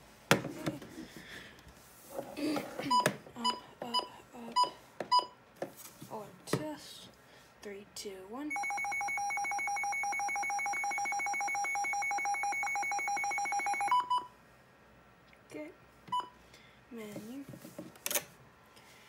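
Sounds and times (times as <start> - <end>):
pulsing two-tone alarm: 8.5 - 14.2
short beeps: 8.5 - 14.3.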